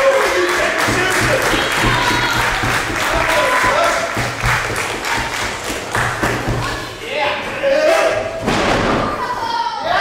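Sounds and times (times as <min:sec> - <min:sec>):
audience shouting: 0:01.0 - 0:04.1.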